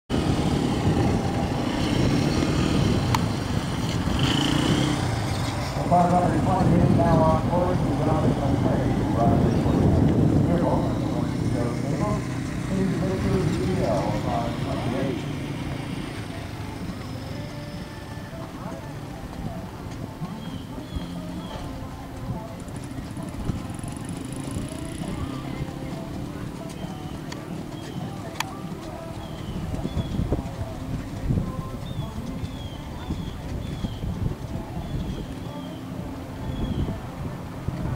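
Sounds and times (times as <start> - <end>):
indistinct voices: 0.1 - 37.9
low rumbling outdoor noise: 0.1 - 37.9.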